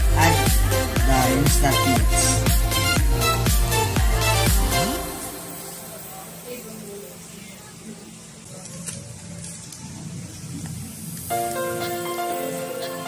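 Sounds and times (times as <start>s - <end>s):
background music: 0.0s - 6.7s, 11.3s - 13.0s
water boiling in a pot: 9.1s - 11.4s.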